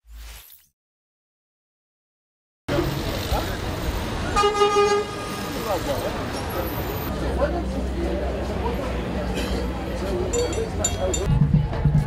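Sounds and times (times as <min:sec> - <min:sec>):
passers-by talking: 0:02.7 - 0:12.0
traffic: 0:02.7 - 0:12.0
car horn toot: 0:04.4 - 0:05.5.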